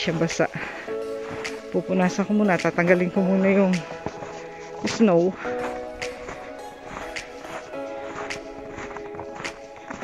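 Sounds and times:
background music with light beat: 0.0 - 10.0.

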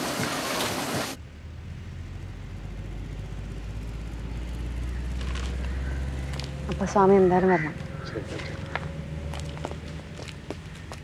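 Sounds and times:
vehicle engine rumble: 1.1 - 11.0.

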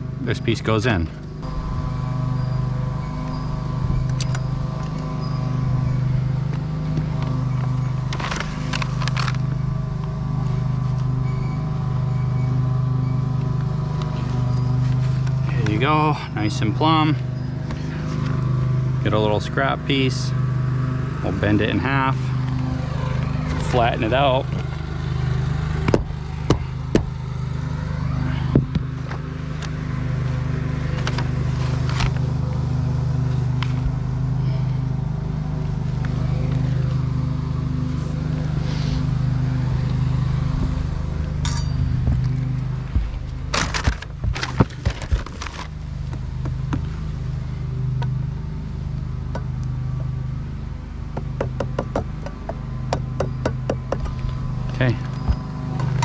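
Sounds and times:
motor running: 0.0 - 56.0
knocks and taps on metal: 51.2 - 54.1.

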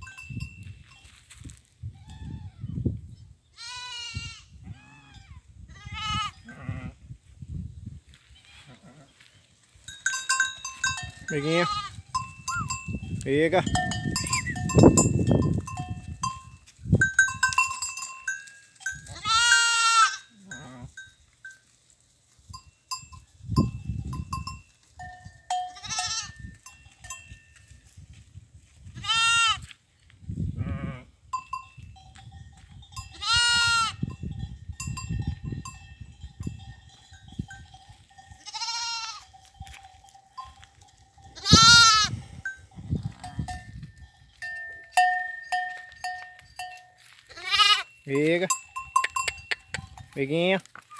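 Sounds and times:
livestock bells ringing: 0.0 - 1.3, 9.9 - 21.7, 22.5 - 27.7, 31.3 - 50.5
goats bleating: 3.6 - 7.0, 11.3 - 12.0, 19.1 - 20.9, 29.0 - 29.6, 33.1 - 34.0, 38.4 - 39.2, 41.4 - 42.2, 47.3 - 48.0.

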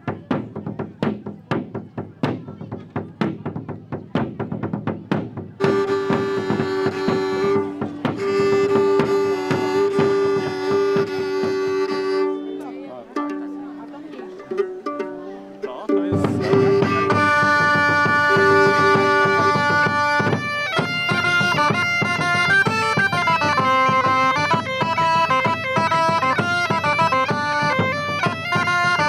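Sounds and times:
bowed fiddle sustained notes: 5.6 - 29.0
quick percussive strikes: 14.5 - 29.0.

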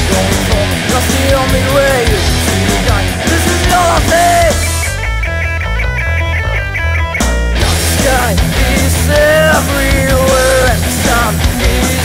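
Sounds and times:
bass guitar: 0.0 - 12.0
fast electric guitar riff: 0.0 - 12.0.

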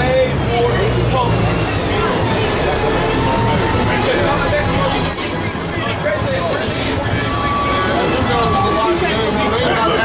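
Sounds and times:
heavy vehicle passing: 0.0 - 9.6
people talking: 0.0 - 10.0
street traffic: 0.0 - 10.0.

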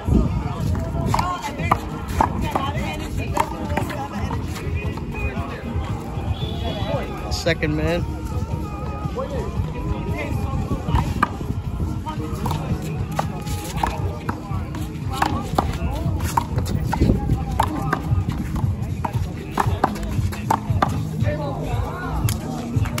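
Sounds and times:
music: 0.0 - 23.0
voices: 0.0 - 23.0.

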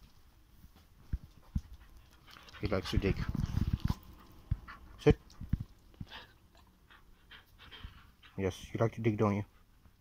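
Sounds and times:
dog panting and snuffling: 1.1 - 10.0.

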